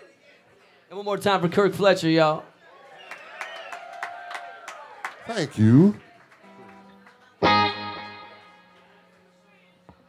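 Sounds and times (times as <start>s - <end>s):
faint crowd cheer: 2.6s - 6.9s.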